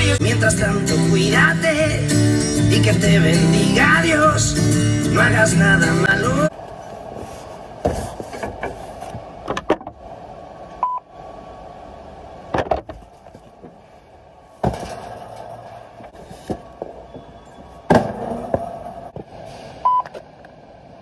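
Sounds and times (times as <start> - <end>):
steady background hum: 0.0 - 21.0
knocks and clatter of items: 14.6 - 19.3.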